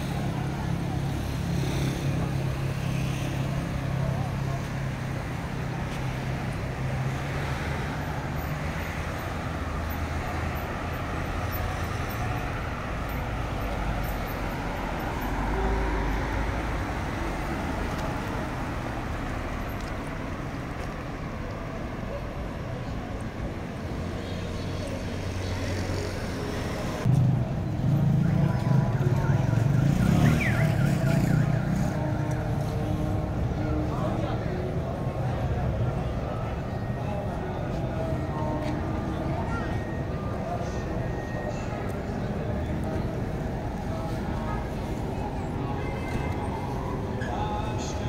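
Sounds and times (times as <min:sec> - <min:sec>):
cars driving past: 0:00.0 - 0:22.0, 0:22.8 - 0:48.0.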